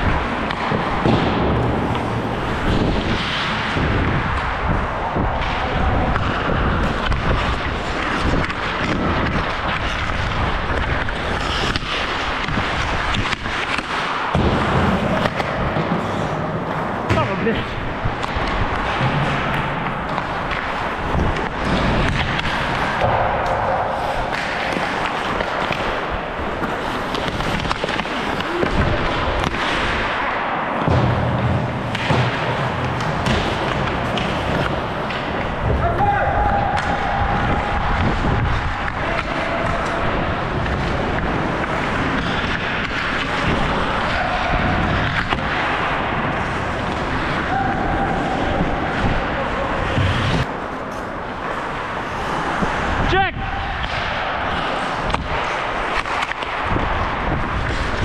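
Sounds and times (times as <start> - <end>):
wind rushing past microphone: 0.0 - 11.2, 35.3 - 41.6
hockey sticks and puck knocking: 0.0 - 58.0
skate blades scraping ice: 0.0 - 58.0.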